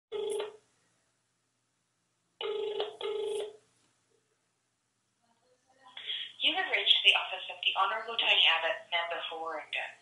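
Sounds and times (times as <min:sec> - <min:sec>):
telephone ringback tone: 0:00.1 - 0:00.6, 0:02.4 - 0:03.6.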